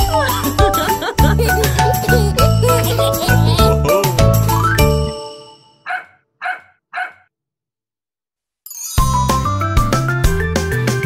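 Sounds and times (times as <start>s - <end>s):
children's song music: 0.0s - 5.8s
dog barking: 5.8s - 7.3s.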